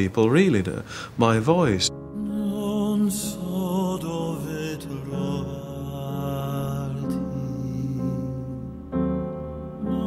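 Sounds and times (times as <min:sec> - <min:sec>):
soft instrumental accompaniment: 0:00.8 - 0:10.0
man singing with vibrato: 0:02.0 - 0:08.8.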